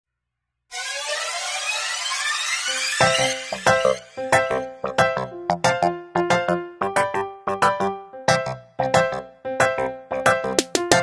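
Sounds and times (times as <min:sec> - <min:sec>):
synthesized riser sound effect: 0:00.7 - 0:04.8.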